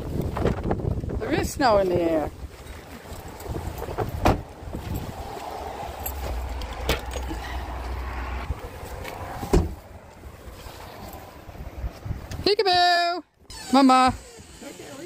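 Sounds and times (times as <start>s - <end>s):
wind rumbling on microphone: 0.0s - 12.7s.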